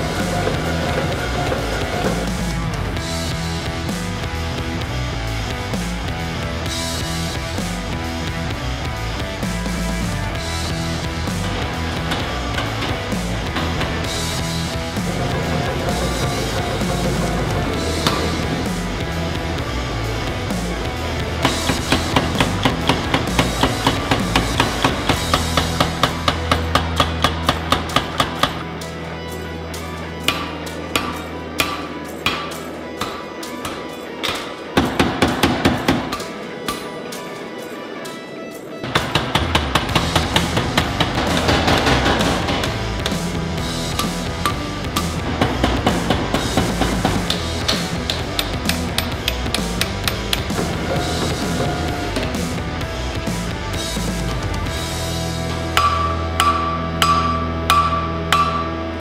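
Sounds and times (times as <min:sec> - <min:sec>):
background music: 0:00.0 - 0:59.0
hammer striking hot steel: 0:30.3 - 0:37.2, 0:55.7 - 0:59.0.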